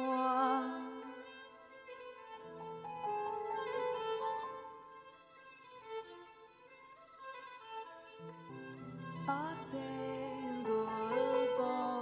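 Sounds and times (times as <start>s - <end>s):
violin playing softly: 0.0s - 12.0s.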